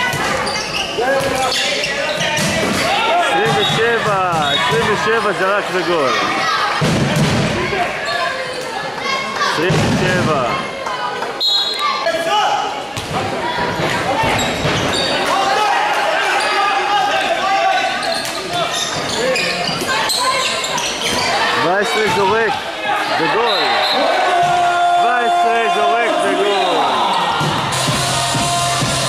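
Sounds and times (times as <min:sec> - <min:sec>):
voices calling and shouting: 0:00.0 - 0:28.6
ball bouncing on court: 0:13.0 - 0:15.0.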